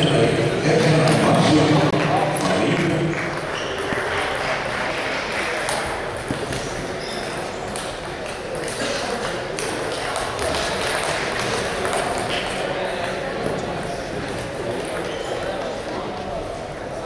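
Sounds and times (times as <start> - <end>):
background voices in hall: 0.0 - 17.0.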